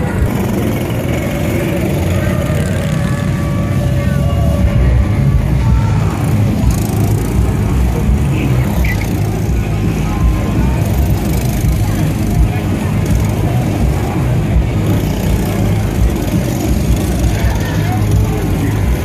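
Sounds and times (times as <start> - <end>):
go-kart engines passing: 0.0 - 19.0
people's voices: 0.0 - 19.0.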